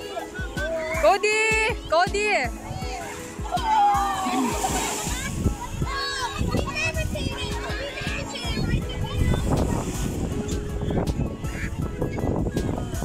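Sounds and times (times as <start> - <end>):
background music: 0.0 - 13.0
children calling out: 2.9 - 8.6
water splashing: 2.9 - 10.6.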